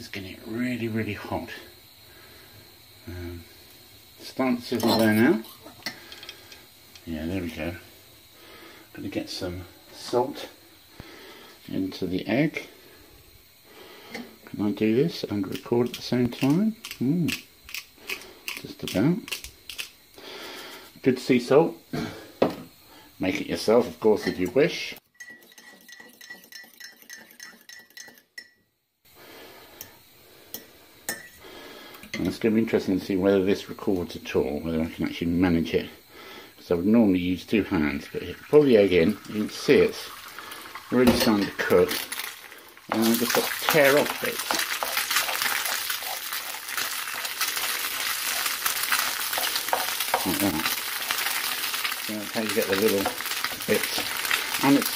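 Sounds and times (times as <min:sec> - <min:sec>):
salt grinder grinding: 0:15.5 - 0:19.9, 0:40.0 - 0:54.9
egg sizzling in frying pan: 0:38.0 - 0:54.9.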